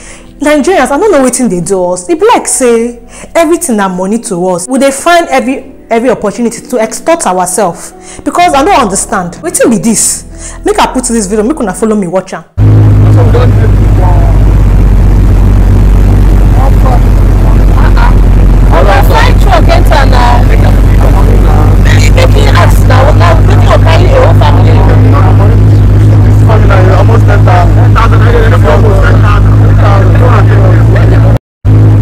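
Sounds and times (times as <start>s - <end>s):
people talking: 0.4s - 14.5s, 16.3s - 31.4s
truck engine drone: 12.6s - 32.0s
faint voices: 16.4s - 31.4s.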